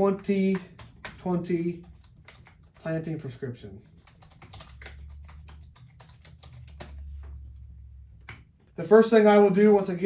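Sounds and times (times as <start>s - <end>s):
typing on computer keyboard: 0.0s - 3.2s, 3.9s - 7.0s
low steady hum: 0.0s - 10.0s.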